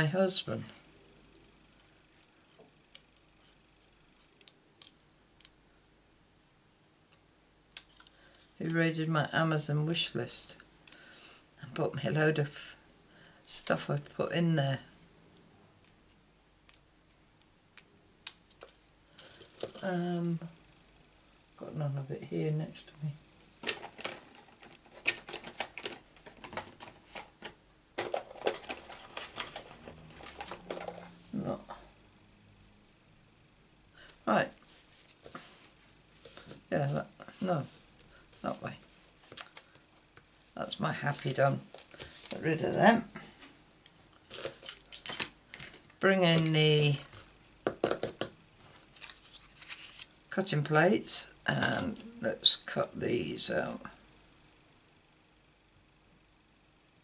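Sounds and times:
paper rustling: 0:28.0 - 0:31.2, 0:41.1 - 0:42.4, 0:48.6 - 0:50.2.

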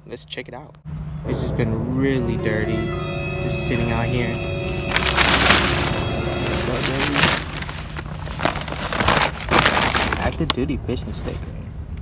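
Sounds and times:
plastic tarp rustling and crinkling: 0:04.9 - 0:11.5.

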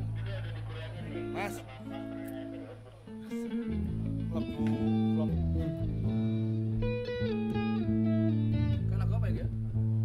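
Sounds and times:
bass guitar notes: 0:00.0 - 0:10.0
electric guitar sustained notes: 0:00.9 - 0:10.0.

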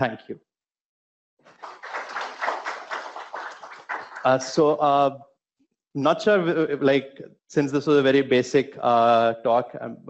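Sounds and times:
audience applauding: 0:01.4 - 0:04.8.

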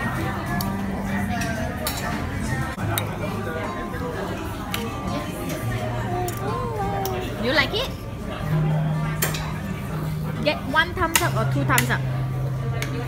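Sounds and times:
background music: 0:00.0 - 0:12.8
chatter: 0:00.0 - 0:13.0.

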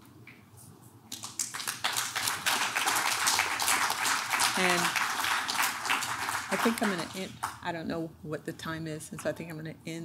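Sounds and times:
audience applause: 0:01.2 - 0:07.6.

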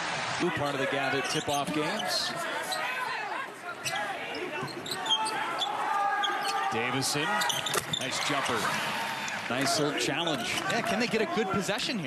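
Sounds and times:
voices in an arena: 0:00.0 - 0:12.0
sneakers squeaking: 0:01.1 - 0:08.7.

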